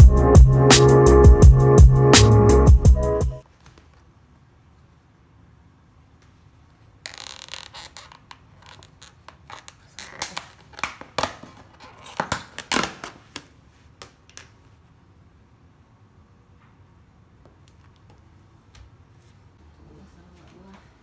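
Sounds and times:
plastic crinkling and scraping: 0:07.1 - 0:13.3.

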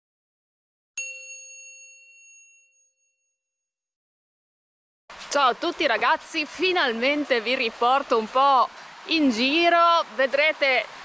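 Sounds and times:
bright metallic ding: 0:01.0 - 0:03.4.

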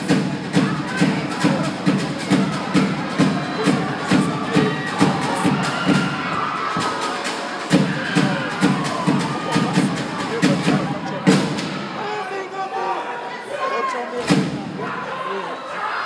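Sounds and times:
steady drum beat: 0:00.0 - 0:12.0, 0:14.2 - 0:14.9
crowd cheering: 0:00.0 - 0:16.0.

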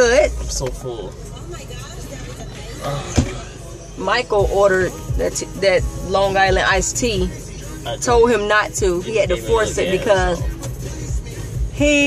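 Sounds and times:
car cabin low rumble: 0:00.0 - 0:12.0.

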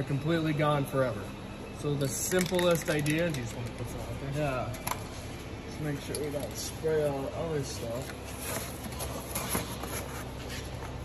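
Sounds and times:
shop background hum: 0:00.0 - 0:11.0.

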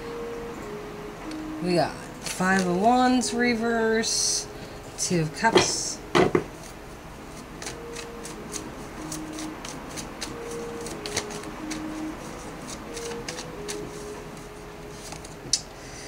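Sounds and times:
soft background melody: 0:00.0 - 0:16.0
cards being shuffled: 0:06.6 - 0:15.4.

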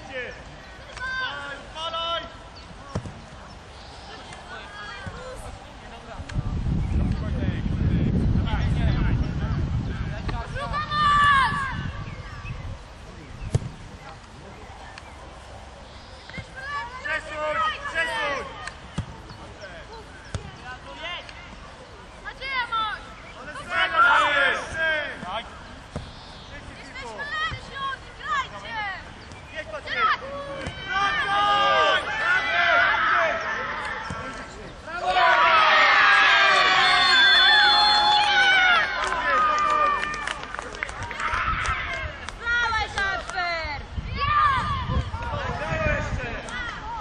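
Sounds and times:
football kicked on grass: 0:02.8 - 0:03.5, 0:13.4 - 0:13.9, 0:18.9 - 0:19.4, 0:24.7 - 0:26.2
children shouting and cheering: 0:10.6 - 0:12.4, 0:34.9 - 0:40.4, 0:41.0 - 0:43.2, 0:44.0 - 0:47.0
players calling faintly: 0:12.2 - 0:43.8.

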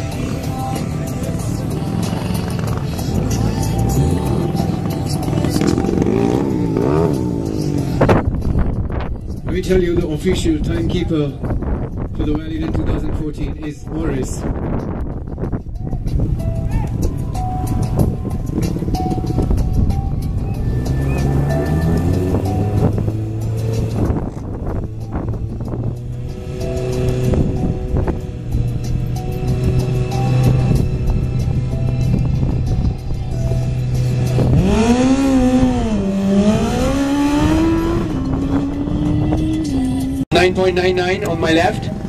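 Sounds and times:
motorcycle engine revving: 0:00.0 - 0:08.7, 0:18.2 - 0:32.8, 0:33.4 - 0:40.3.

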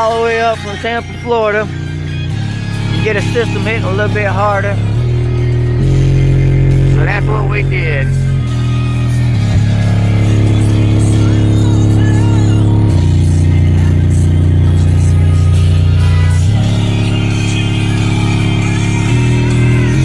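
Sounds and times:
bass-heavy music through subwoofers: 0:00.0 - 0:20.0.

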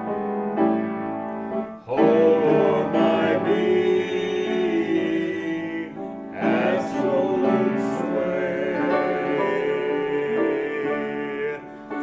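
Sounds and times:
grand piano chords: 0:00.0 - 0:12.0.

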